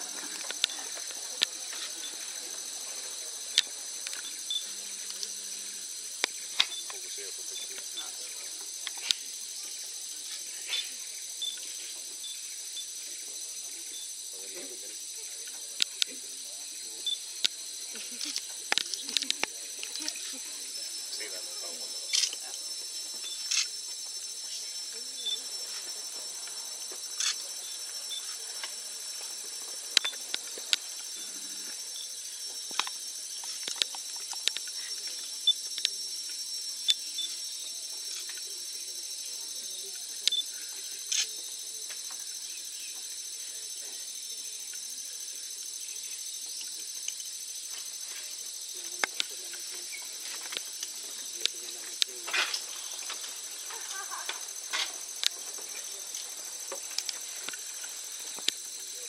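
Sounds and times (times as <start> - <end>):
insect chorus: 0.0 - 59.0.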